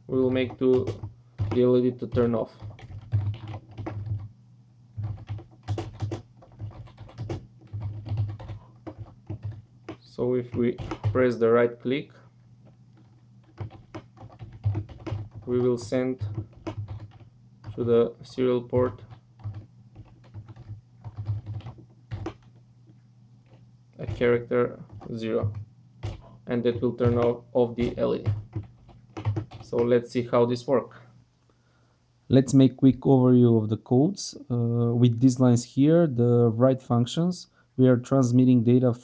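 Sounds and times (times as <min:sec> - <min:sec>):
faint low hum: 0:00.0 - 0:39.0
computer keyboard typing: 0:00.2 - 0:04.3, 0:05.0 - 0:11.4, 0:12.9 - 0:22.6, 0:23.4 - 0:30.0.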